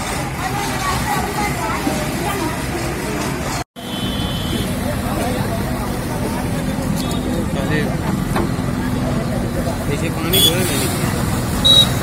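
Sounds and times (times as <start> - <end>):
crowd chatter: 0.0 - 12.0
diesel engine humming: 0.0 - 12.0.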